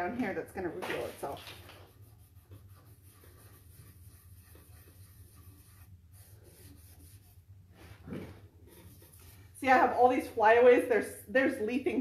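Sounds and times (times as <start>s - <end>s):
abrasive pad scrubbing: 1.0s - 10.7s.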